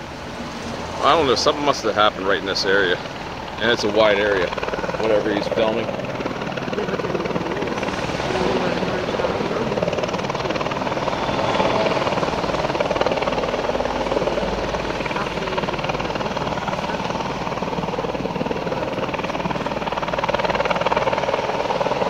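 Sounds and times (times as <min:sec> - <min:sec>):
helicopter rotor beat: 0:00.0 - 0:22.0.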